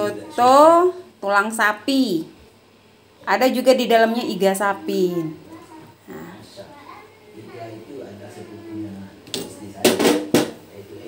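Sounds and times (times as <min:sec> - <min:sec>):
faint background murmur: 0:00.0 - 0:11.0
sharp knocks in kitchen: 0:09.3 - 0:10.6.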